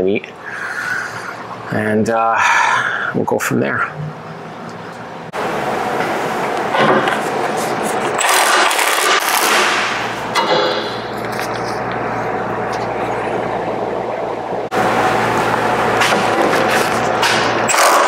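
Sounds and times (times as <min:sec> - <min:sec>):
impact wrench rattle: 0:08.2 - 0:11.2.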